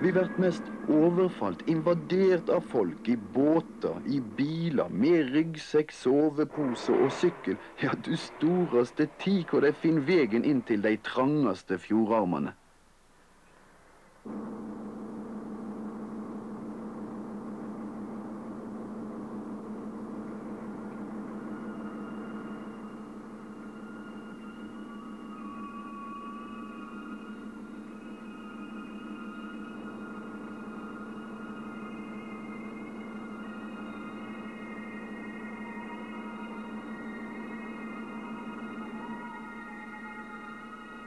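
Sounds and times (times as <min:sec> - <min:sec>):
slow electronic music: 0:00.0 - 0:11.0, 0:14.3 - 0:41.0
ship engine humming: 0:00.0 - 0:11.6, 0:14.3 - 0:41.0.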